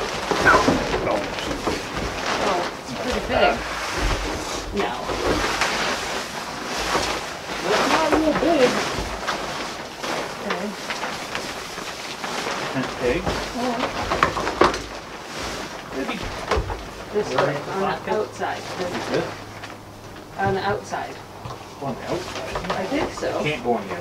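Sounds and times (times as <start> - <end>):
nylon fabric rustling and crinkling: 0.0 - 24.0.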